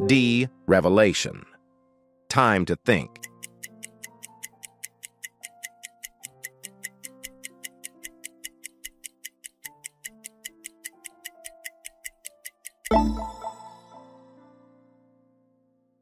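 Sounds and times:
soft sustained chord music: 0.0s - 2.3s, 12.9s - 16.0s
clock-like timer ticks: 2.9s - 13.8s.

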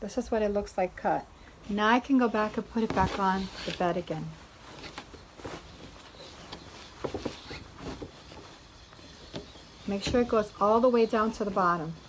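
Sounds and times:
sheet rustling: 1.6s - 12.0s.

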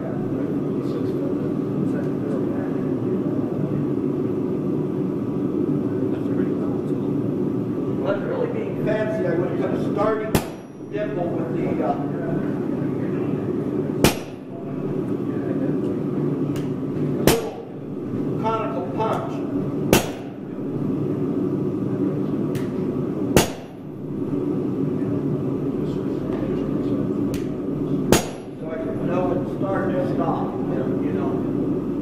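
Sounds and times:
hammer striking steel on anvil: 10.3s - 10.8s, 14.0s - 14.5s, 17.2s - 17.7s, 19.9s - 20.4s, 23.4s - 23.9s, 28.1s - 28.6s.

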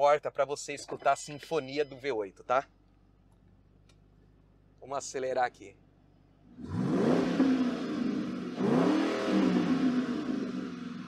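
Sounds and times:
car engine revving: 6.4s - 11.0s.

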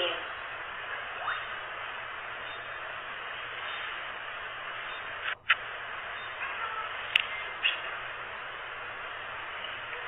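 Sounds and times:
static hiss: 0.0s - 10.0s.

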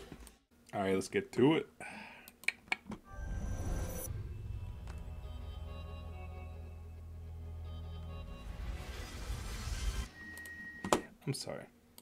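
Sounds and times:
deep steady drone: 3.1s - 10.1s
noisy hissing swell: 8.3s - 10.2s.

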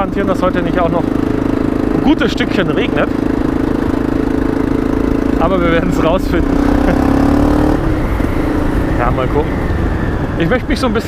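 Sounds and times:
motorcycle engine running: 0.0s - 11.0s
wind rumble on microphone: 7.7s - 11.0s.

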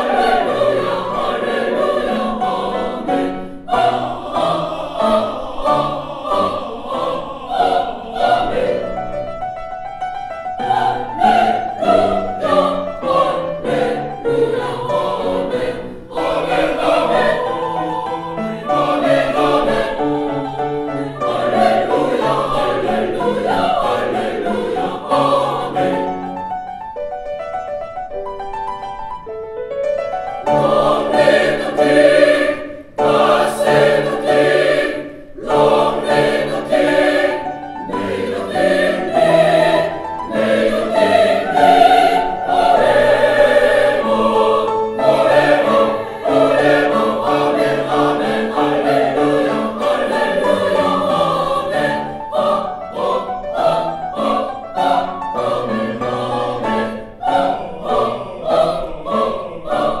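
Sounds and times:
mixed choir singing: 0.0s - 26.6s, 30.4s - 60.0s
grand piano accompaniment: 0.0s - 60.0s.

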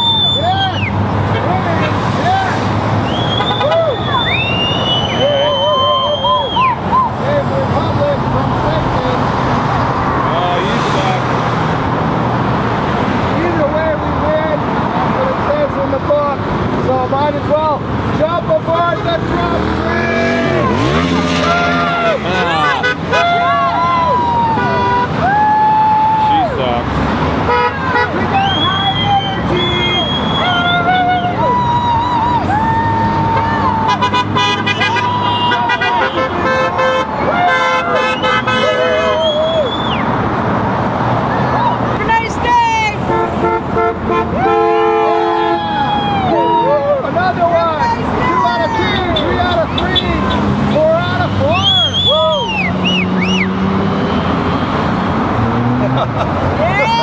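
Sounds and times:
people whooping and cheering: 0.0s - 1.0s, 2.2s - 7.4s, 19.9s - 26.7s, 28.0s - 36.3s, 37.2s - 40.2s, 41.4s - 41.9s, 44.3s - 49.3s, 51.4s - 54.3s, 56.6s - 57.0s
car horns honking: 0.0s - 6.8s, 18.5s - 25.2s, 27.4s - 31.3s, 33.3s - 39.9s, 42.0s - 46.7s, 47.8s - 55.7s
traffic noise: 0.0s - 57.0s.

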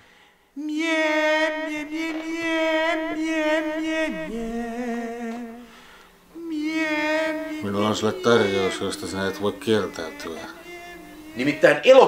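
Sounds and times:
person humming: 0.6s - 12.0s.

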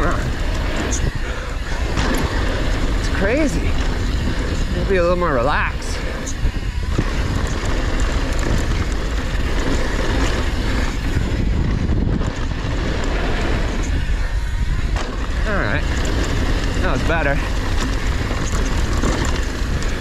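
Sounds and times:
bike tyres rolling on dirt: 0.0s - 20.0s
wind buffeting microphone: 0.0s - 20.0s.

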